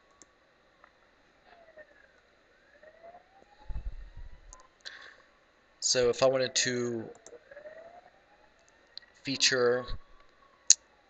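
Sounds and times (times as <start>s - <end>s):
distant siren wailing: 0.0s - 11.0s
low rumble on microphone: 3.6s - 4.6s.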